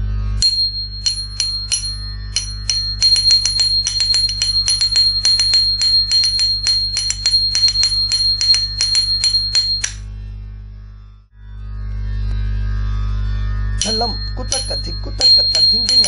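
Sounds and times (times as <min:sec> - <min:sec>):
steady high metallic tone: 0:00.0 - 0:10.2, 0:11.8 - 0:16.0
low hum: 0:00.0 - 0:16.0
small hand cymbals struck: 0:00.4 - 0:10.0, 0:13.8 - 0:16.0.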